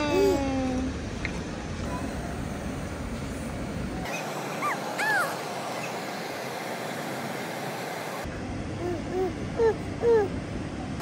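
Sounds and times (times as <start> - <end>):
baby squealing: 4.1 - 5.4.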